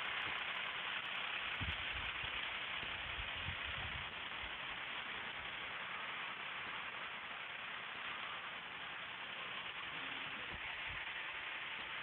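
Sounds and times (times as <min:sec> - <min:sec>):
street background hiss: 0:00.0 - 0:12.0.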